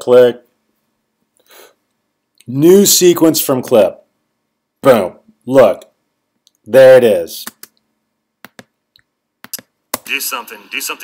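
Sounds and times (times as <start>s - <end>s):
computer controls clicking: 7.4s - 7.8s.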